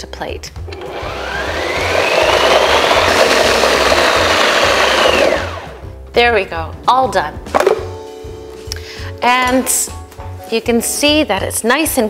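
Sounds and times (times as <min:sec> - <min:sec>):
food processor motor whining: 0:00.7 - 0:05.8.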